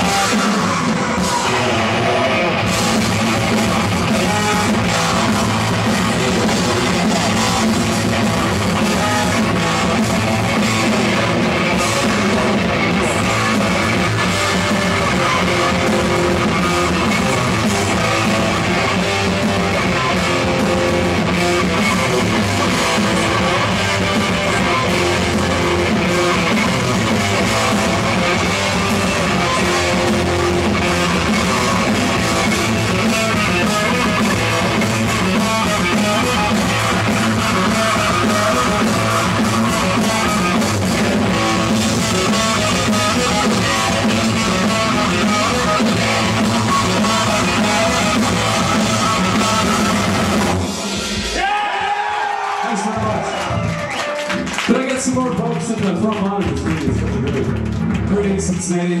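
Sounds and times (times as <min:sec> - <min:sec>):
heavy metal band playing live: 0:00.0 - 0:59.0.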